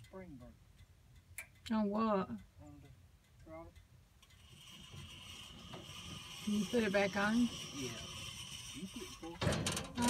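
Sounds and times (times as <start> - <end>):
bandsaw mill rubbing: 4.3 - 10.0.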